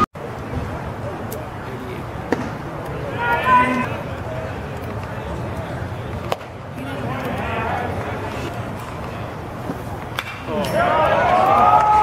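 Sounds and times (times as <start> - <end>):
ballpark crowd noise: 0.0 - 12.0.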